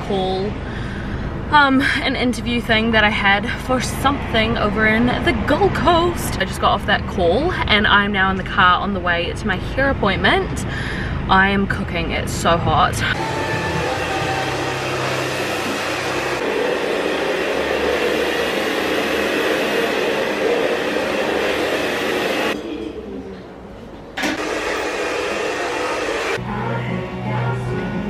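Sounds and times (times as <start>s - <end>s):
hair dryer blowing: 13.2s - 22.6s, 24.2s - 26.4s.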